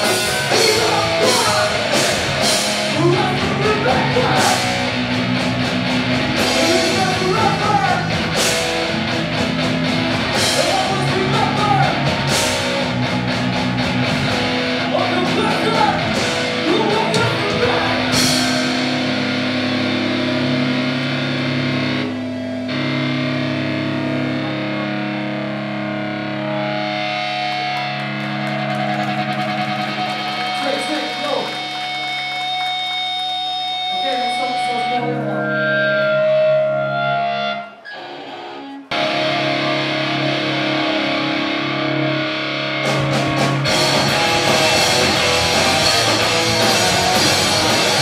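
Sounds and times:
distorted electric guitar chords: 0:00.0 - 0:48.0.

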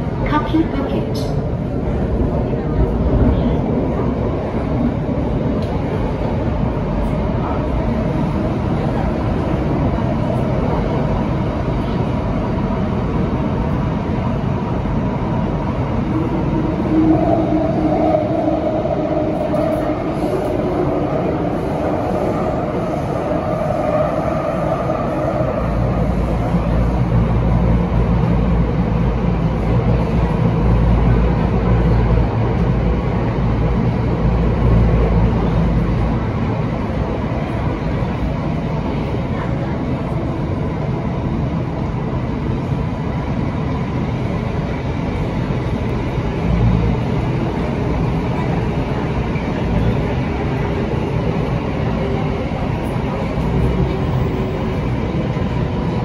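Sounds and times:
train wheels rumbling: 0:00.0 - 0:56.0.

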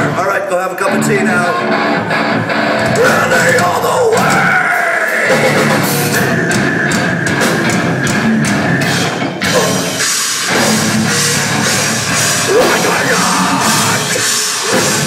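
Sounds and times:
distorted electric guitar: 0:00.0 - 0:15.0
drum kit with crashing cymbals: 0:04.3 - 0:15.0.

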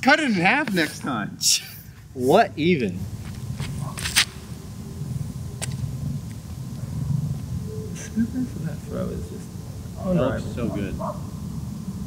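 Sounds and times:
sharp scuff on concrete: 0:00.6 - 0:01.1, 0:03.2 - 0:04.4
wind rumbling on microphone: 0:01.9 - 0:12.0.

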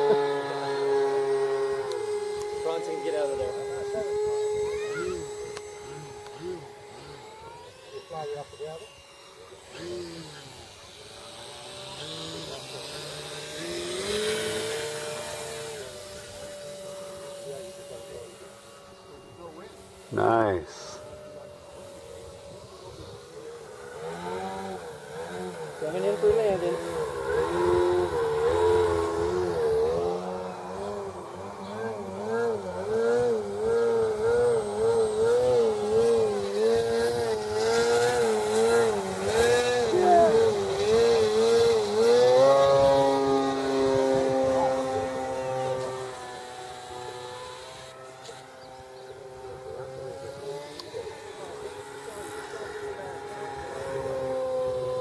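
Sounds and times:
model airplane motor buzzing: 0:00.0 - 0:55.0.

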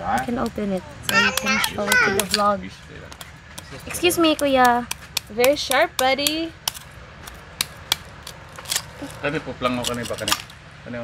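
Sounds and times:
knife cracking sea urchin shell: 0:03.1 - 0:09.0.

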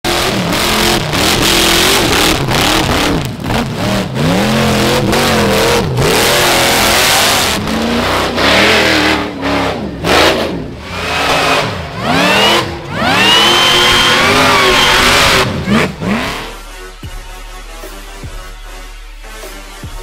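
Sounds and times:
buggy engine revving hard: 0:00.0 - 0:16.7.

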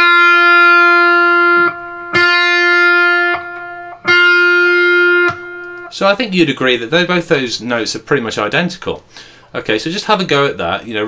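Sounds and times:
clean electric guitar notes: 0:00.0 - 0:05.9.

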